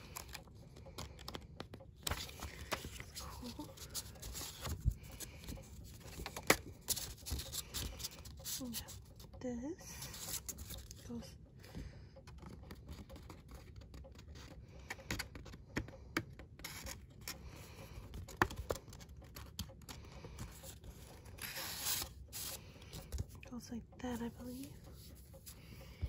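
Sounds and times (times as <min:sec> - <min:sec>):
card sheets rubbing and sliding: 0:02.0 - 0:08.9, 0:20.6 - 0:23.3
paper sliding: 0:21.4 - 0:23.2.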